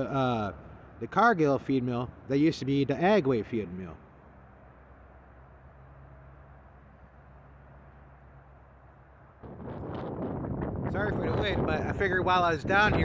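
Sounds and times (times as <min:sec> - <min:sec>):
low hum: 0:03.5 - 0:11.9
wind buffeting microphone: 0:09.4 - 0:13.0.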